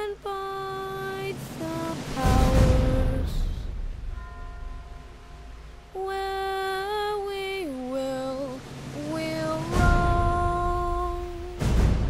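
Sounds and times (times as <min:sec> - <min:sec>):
person singing a long note: 0:00.0 - 0:05.1, 0:05.8 - 0:11.7.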